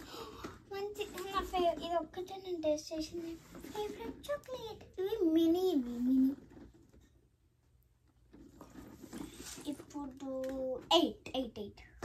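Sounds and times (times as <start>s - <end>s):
girl singing wordless tones: 0.6s - 6.5s.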